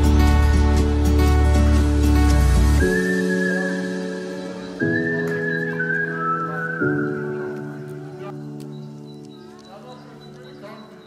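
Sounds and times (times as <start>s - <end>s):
high whistle-like melody: 2.8s - 7.8s.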